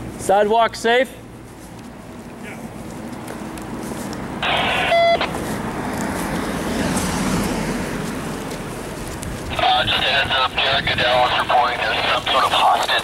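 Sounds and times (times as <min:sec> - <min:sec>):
car passing: 0:03.7 - 0:12.8
radio beep: 0:04.4 - 0:05.4, 0:09.6 - 0:13.0
two-way radio burst: 0:04.4 - 0:05.4, 0:09.5 - 0:13.0.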